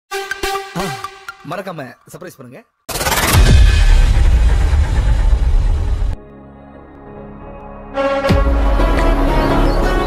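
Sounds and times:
dense noisy film score rumble: 2.9 - 6.2.

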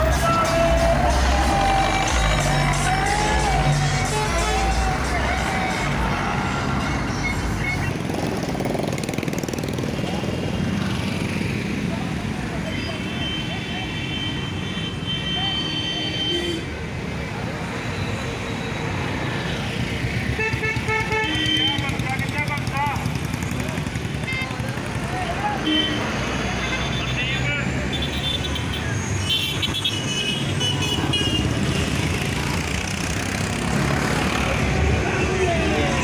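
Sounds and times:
loud bass-heavy music: 0.0 - 7.8
voices: 0.0 - 8.3, 20.7 - 29.4, 30.6 - 36.0
vehicle noise: 0.0 - 36.0.

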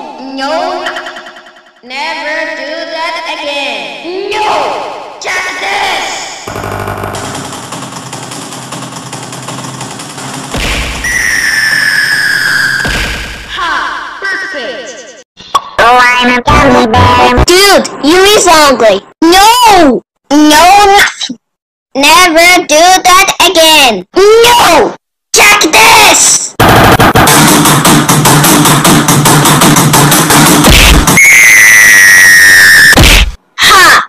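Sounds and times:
distorted cartoon soundtrack clatter: 6.5 - 13.6, 15.9 - 18.3, 26.6 - 31.3
high whistle-like tone: 11.0 - 13.0
loud voice: 15.8 - 17.8.

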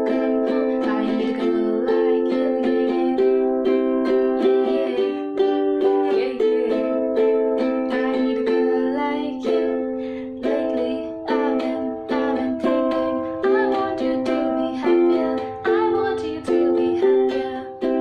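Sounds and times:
ukulele strumming chords: 0.0 - 18.0.

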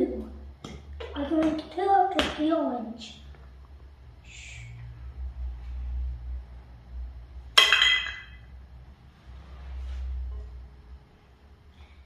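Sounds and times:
glass clink: 7.6 - 8.4.

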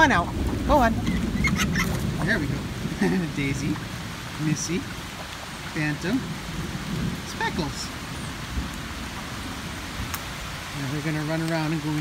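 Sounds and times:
rain pouring: 0.0 - 12.0.

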